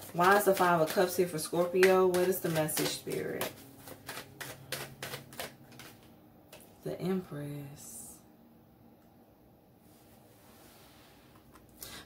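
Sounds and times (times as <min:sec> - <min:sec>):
low steady hum: 0:00.0 - 0:12.0
cards clicking: 0:01.6 - 0:06.6.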